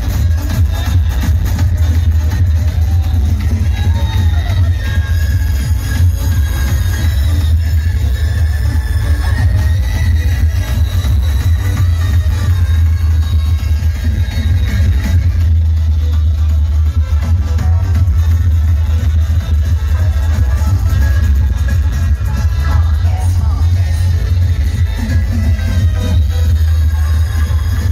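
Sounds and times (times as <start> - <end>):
loud electronic dance music: 0.0 - 27.9.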